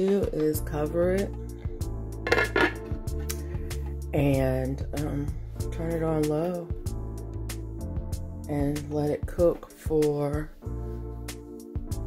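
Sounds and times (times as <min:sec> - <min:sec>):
background music: 0:00.0 - 0:12.0
glass lid clinking: 0:02.3 - 0:02.9.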